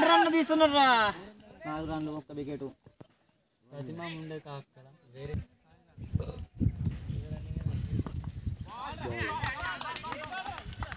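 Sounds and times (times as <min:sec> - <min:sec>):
people calling out outdoors: 0:00.0 - 0:02.1, 0:08.6 - 0:10.9
microphone rumble and knocking: 0:06.0 - 0:08.7.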